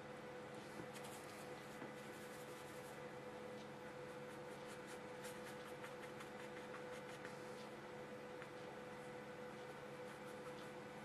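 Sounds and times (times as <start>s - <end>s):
steady electrical hum: 0.0s - 11.0s
brush strokes on paper: 0.6s - 3.0s, 4.1s - 7.8s.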